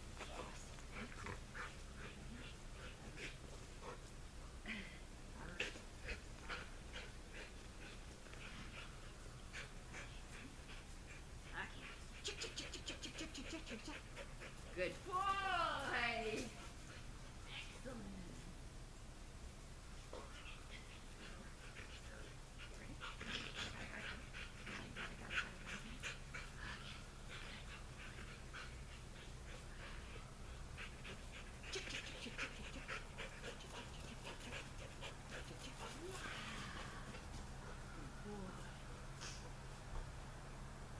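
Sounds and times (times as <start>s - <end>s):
dog panting rapidly: 5.5s - 15.0s, 20.2s - 37.8s.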